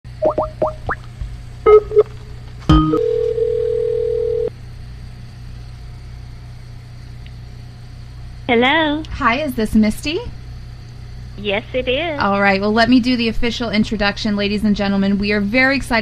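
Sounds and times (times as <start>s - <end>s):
telephone line click: 2.7s - 4.5s
telephone ring tone: 2.7s - 4.5s.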